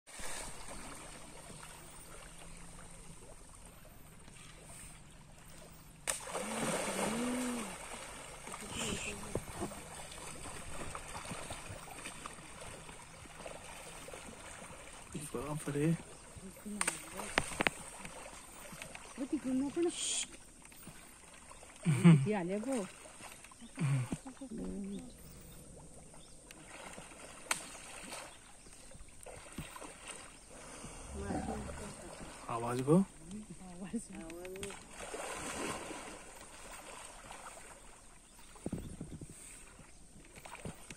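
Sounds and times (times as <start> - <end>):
water splashing and sloshing: 0.1 - 40.9
faint voices: 31.1 - 32.5.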